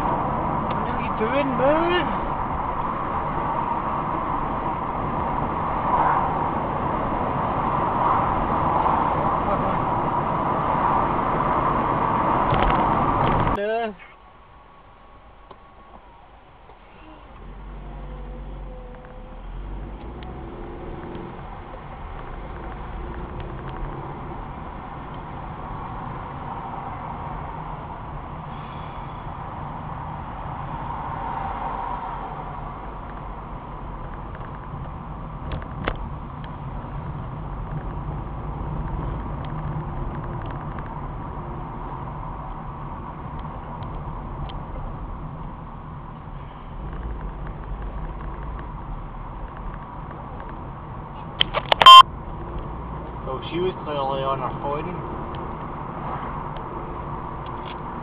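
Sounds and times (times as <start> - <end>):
car road and engine noise: 0.0 - 58.0
loud short beep: 51.7 - 52.0.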